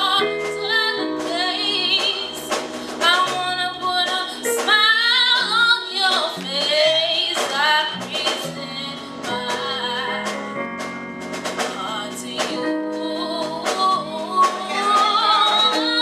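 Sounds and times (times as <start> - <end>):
woman singing with runs: 0.0 - 10.2, 11.8 - 16.0
gospel ensemble singing: 11.8 - 16.0.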